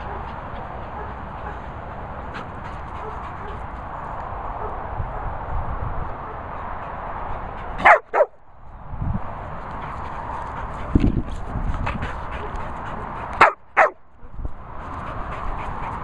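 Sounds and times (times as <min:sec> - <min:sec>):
dog barking: 0:07.8 - 0:08.4, 0:13.4 - 0:14.0.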